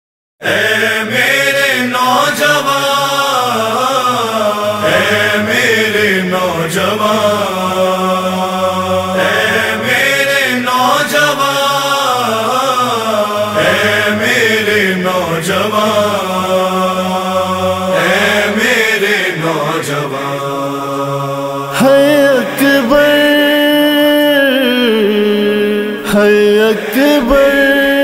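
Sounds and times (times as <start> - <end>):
layered voices chanting: 0.4 - 28.0
solo voice chanting: 21.5 - 28.0.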